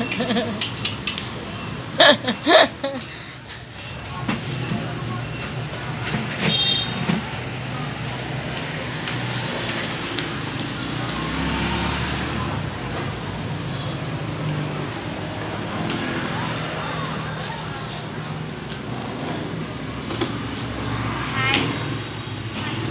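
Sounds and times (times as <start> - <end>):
street traffic noise: 0.0 - 22.9.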